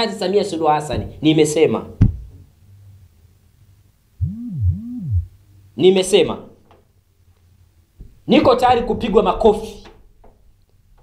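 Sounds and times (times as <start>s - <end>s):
synthesized swoops: 4.2s - 5.4s.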